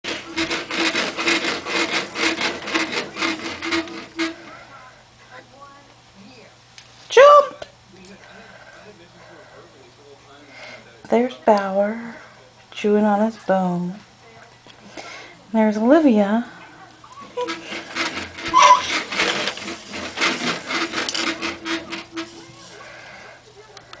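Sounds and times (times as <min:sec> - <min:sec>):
baby jumper creaking and rubbing: 0:00.0 - 0:04.8, 0:17.2 - 0:23.0.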